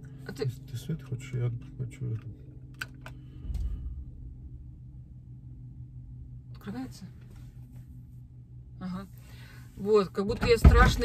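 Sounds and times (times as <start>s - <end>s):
car hum: 0.0s - 11.0s
soft low thump: 3.4s - 4.8s.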